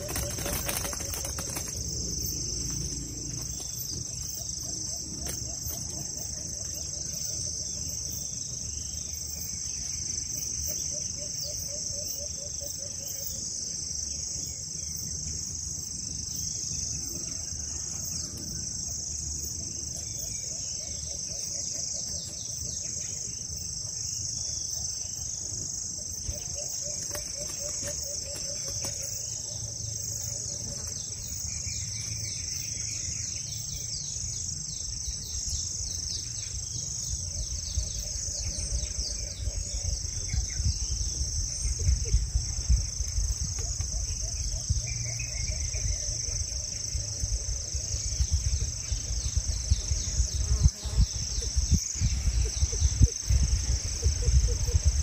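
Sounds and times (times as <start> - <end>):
crickets and insects chorus: 0.0 - 55.0.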